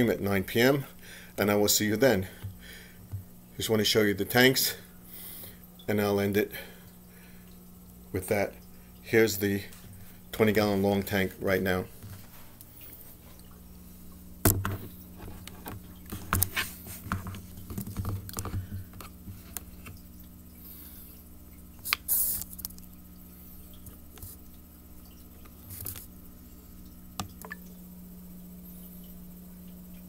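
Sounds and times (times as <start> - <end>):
low hum of tank equipment: 0.0 - 30.0.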